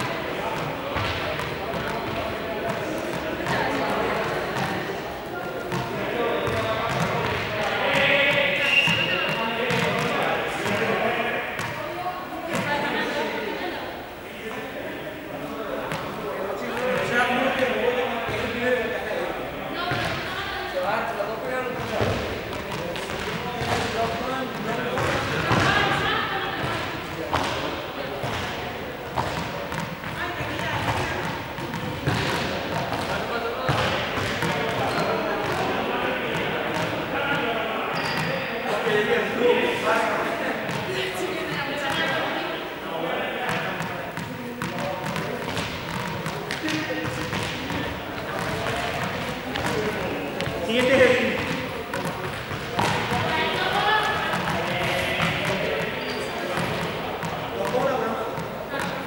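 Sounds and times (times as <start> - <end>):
people talking: 0.0 - 59.0.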